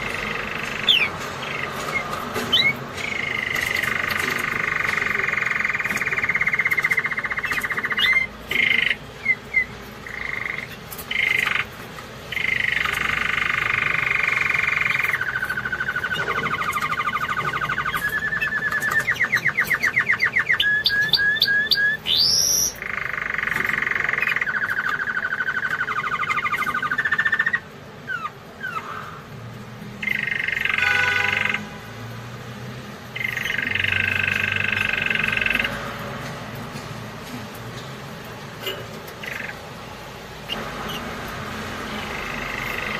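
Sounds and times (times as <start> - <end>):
canary singing trills: 0.0 - 32.2, 32.9 - 42.9.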